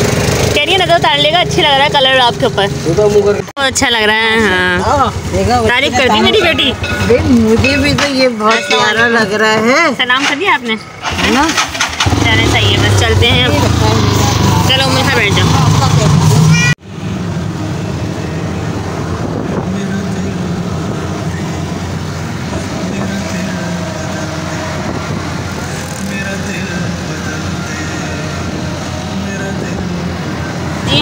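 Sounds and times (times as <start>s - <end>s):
auto-rickshaw engine running: 0.0s - 31.0s
road and wind noise: 0.0s - 31.0s.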